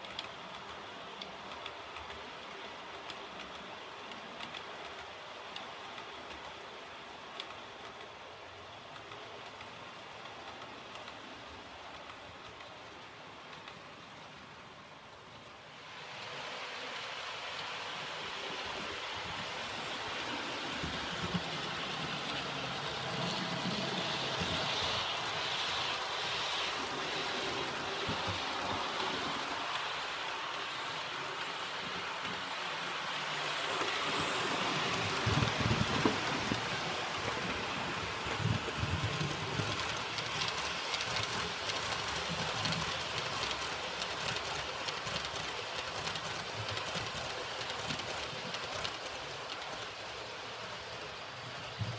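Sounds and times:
wheels clicking over rail joints: 0:00.0 - 0:15.5, 0:16.1 - 0:51.9
model train whirring rumble: 0:00.0 - 0:51.9.

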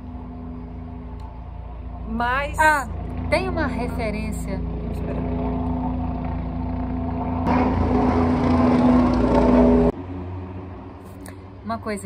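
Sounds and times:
motor engine running: 0:00.0 - 0:10.0.

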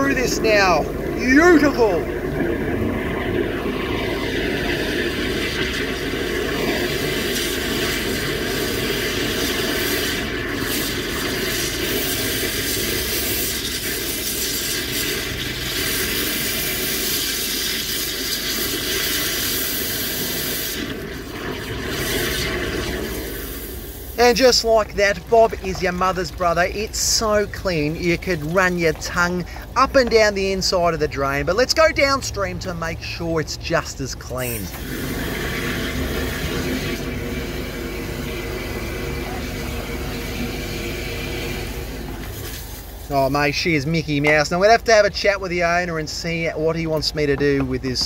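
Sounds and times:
water spray escaping: 0:00.0 - 0:31.2, 0:34.1 - 0:44.2
drain jetter water rushing: 0:00.0 - 0:48.0.

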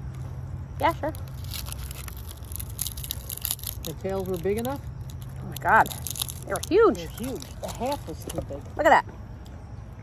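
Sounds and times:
lobster shell crackling: 0:00.8 - 0:08.9.

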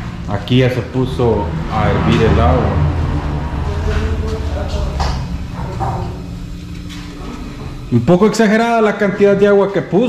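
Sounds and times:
low hum: 0:00.0 - 0:10.0
faint voices: 0:01.5 - 0:08.2.

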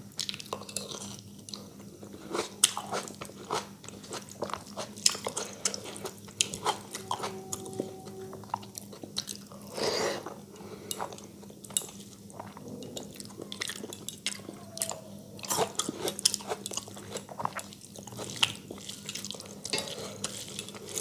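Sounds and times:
close chewing and mouth sounds: 0:00.0 - 0:21.0
faint steady hum: 0:00.0 - 0:21.0.

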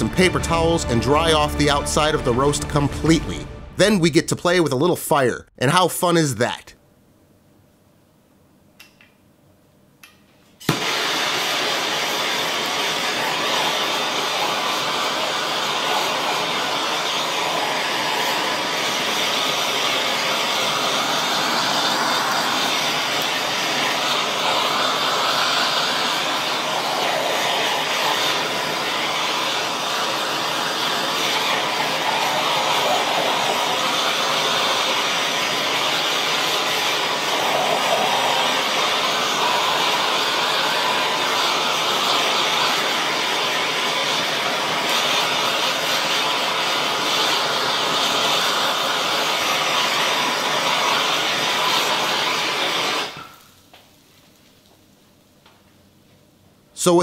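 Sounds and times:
blowtorch hissing: 0:00.0 - 0:02.6, 0:10.6 - 0:53.8.

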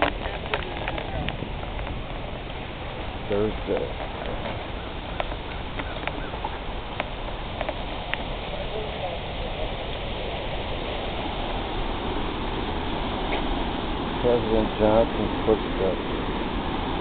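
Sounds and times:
waterfall rushing: 0:00.0 - 0:17.0.

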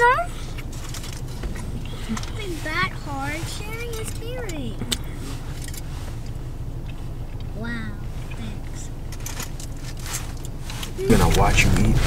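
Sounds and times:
car cabin low rumble: 0:00.0 - 0:12.0
faint rustles and clicks: 0:00.0 - 0:12.0.

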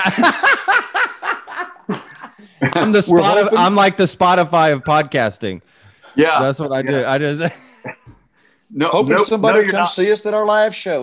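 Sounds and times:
men laughing hard: 0:00.0 - 0:03.5.

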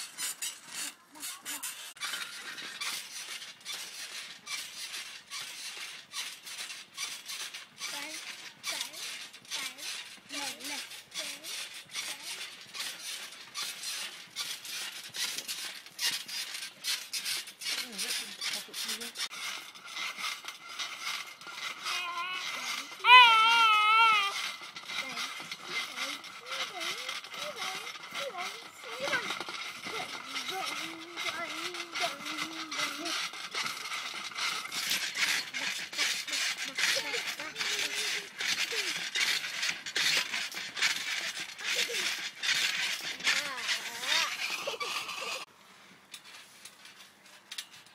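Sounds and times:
trampoline clicks and knocks: 0:00.0 - 0:45.5, 0:46.1 - 0:47.9
toddlers babbling and squealing: 0:21.6 - 0:33.9, 0:35.4 - 0:39.1.

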